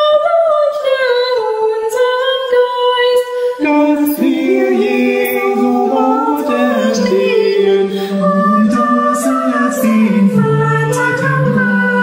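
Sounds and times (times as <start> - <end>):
woman singing a hymn: 0.0 - 3.7.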